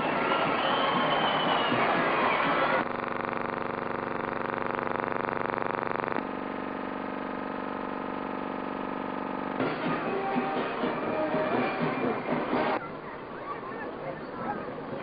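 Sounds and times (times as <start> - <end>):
brass band music: 9.6 - 12.8.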